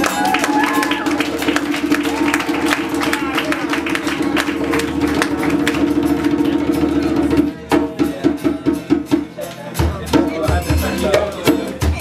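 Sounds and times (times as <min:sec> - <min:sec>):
acoustic guitar strumming: 0:00.0 - 0:12.0
hand drum strikes: 0:00.0 - 0:12.0.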